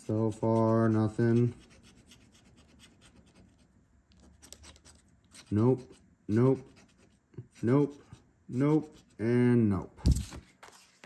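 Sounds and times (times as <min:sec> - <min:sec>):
scratching lottery ticket coating: 0:00.0 - 0:09.4.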